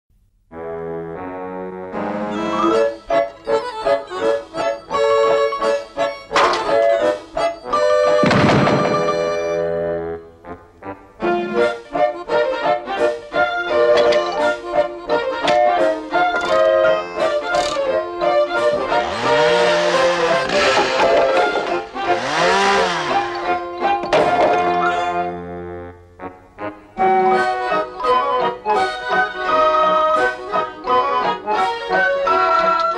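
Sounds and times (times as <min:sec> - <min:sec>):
bouncy instrumental music: 0:00.5 - 0:32.9.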